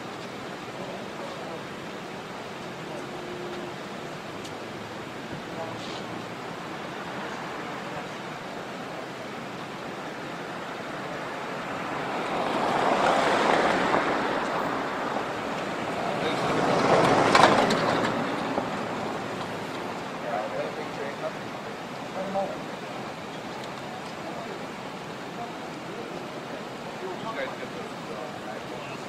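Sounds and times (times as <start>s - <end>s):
steady background hiss: 0.0s - 29.0s
vehicles passing: 0.0s - 29.0s.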